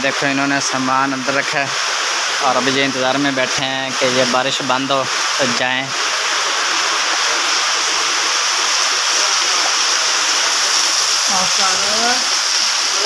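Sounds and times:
heavy rain pouring: 0.0 - 13.0.

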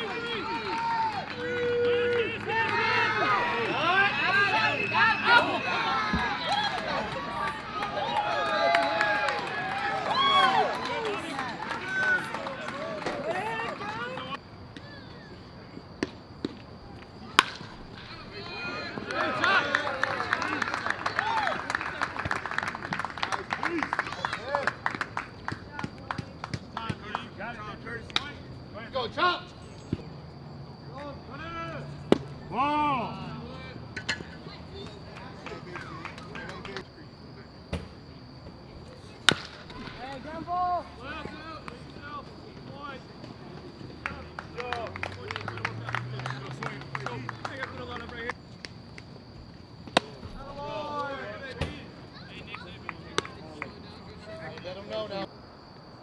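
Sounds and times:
voices and shouts: 0.0 - 15.4, 16.8 - 29.7, 30.8 - 37.5, 39.0 - 48.4, 50.0 - 55.3.

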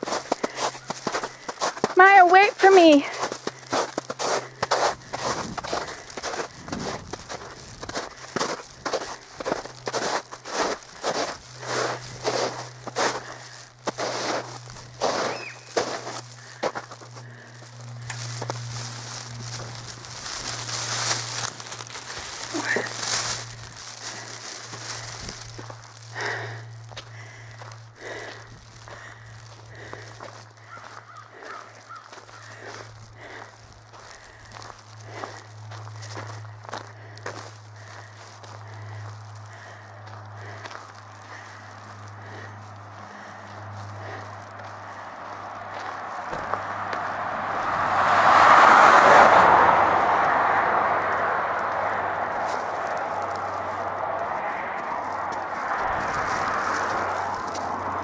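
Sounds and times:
footsteps crunching on gravel: 0.0 - 58.0
steady low hum: 3.1 - 30.7.

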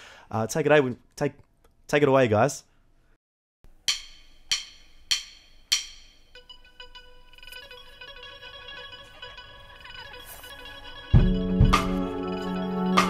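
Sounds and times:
sharp ringing plucked notes: 3.9 - 13.0.

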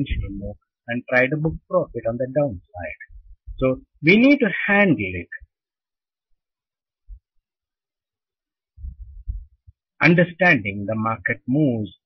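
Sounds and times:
muffled thumps on microphone: 0.0 - 0.5, 1.4 - 2.1, 8.8 - 9.9
person speaking: 0.0 - 5.6.

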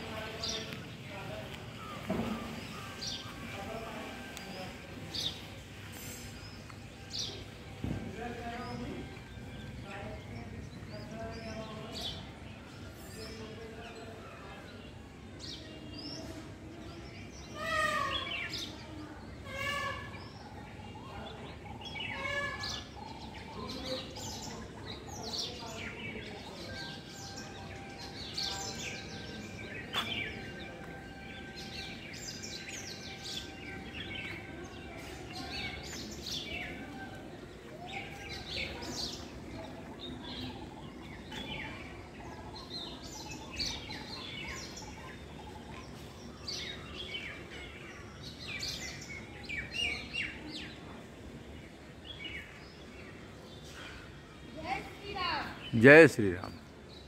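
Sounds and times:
small birds chirping: 0.0 - 57.0.

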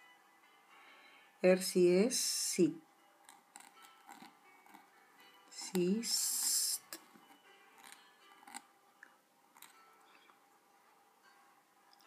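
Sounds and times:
pen scratching on paper: 3.2 - 4.9, 5.6 - 8.7.

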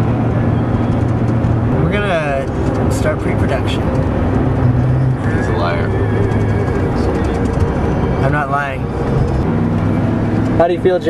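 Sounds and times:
car engine and road hum: 0.0 - 11.0.

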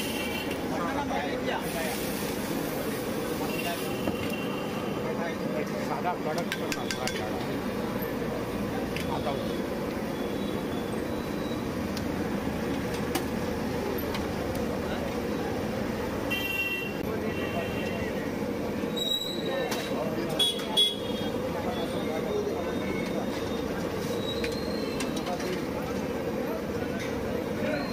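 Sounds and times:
traffic: 0.0 - 27.9
voices: 0.0 - 27.9
vehicle horn toot: 16.3 - 18.0, 20.4 - 21.4.

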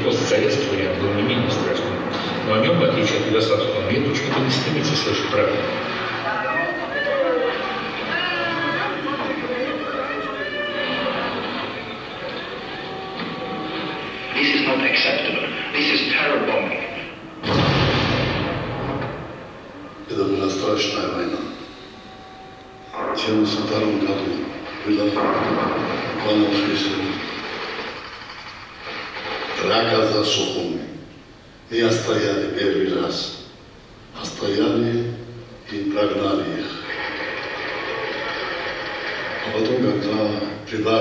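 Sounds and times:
explosion blast: 17.4 - 19.6, 24.7 - 28.3.

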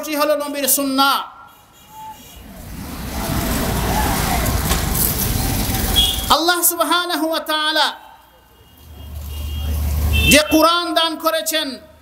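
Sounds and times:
low rumble: 2.4 - 6.3.

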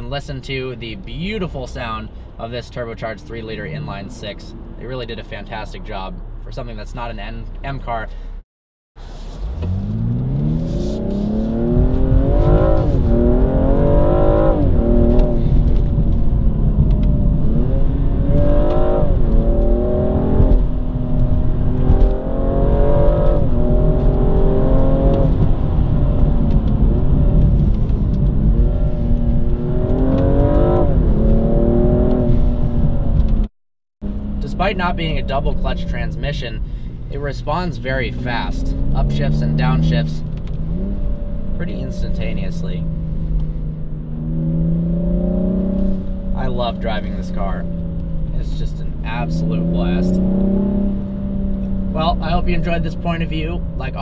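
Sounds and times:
car engine accelerating through gears: 9.0 - 54.0.

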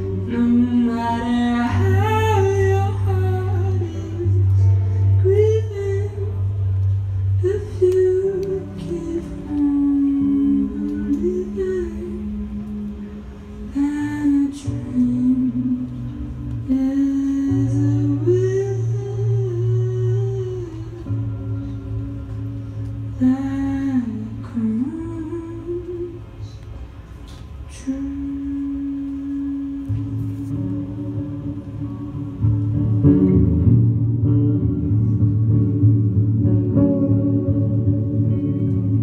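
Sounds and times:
electric guitar: 0.0 - 39.0
held bass notes: 0.0 - 39.0.

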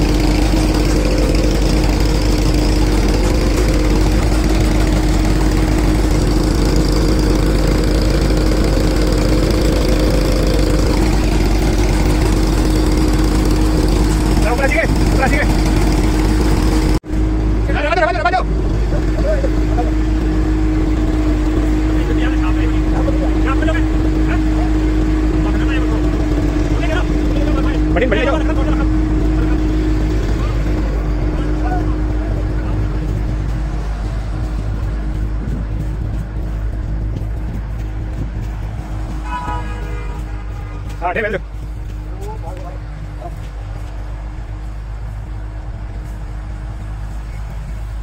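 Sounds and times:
thresher machine running: 0.0 - 47.2
tractor engine humming: 0.0 - 48.0
people calling out: 39.2 - 41.0.

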